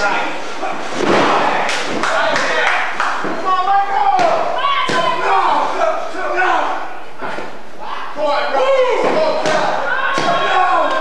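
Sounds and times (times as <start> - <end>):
shouting voices: 0.0 - 11.0.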